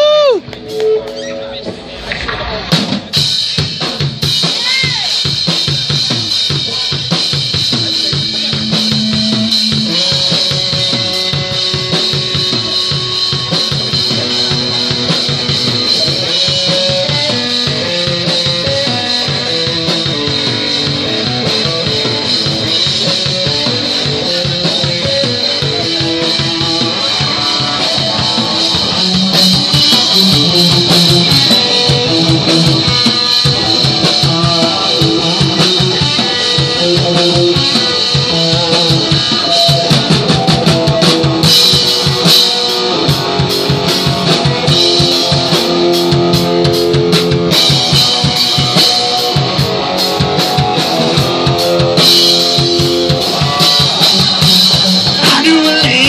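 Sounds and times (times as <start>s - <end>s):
drum kit: 0.0s - 56.0s
electric guitar through amp: 0.0s - 56.0s.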